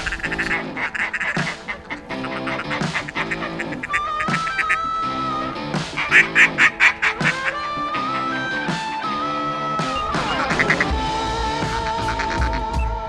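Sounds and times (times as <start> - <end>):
loud duck quacks: 0.0 - 12.9
background music: 0.0 - 13.0.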